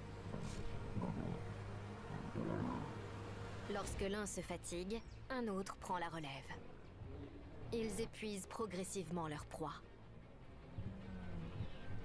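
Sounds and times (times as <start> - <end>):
lions growling: 0.3 - 3.2, 10.7 - 12.0.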